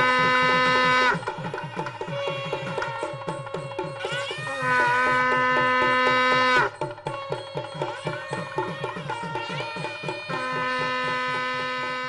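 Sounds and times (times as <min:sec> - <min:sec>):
hand drum rhythm: 0:00.0 - 0:12.0.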